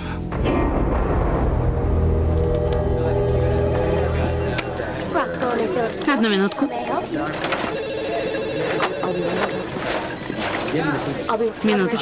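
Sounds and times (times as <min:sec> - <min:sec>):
telephone ringing: 0:03.7 - 0:12.0.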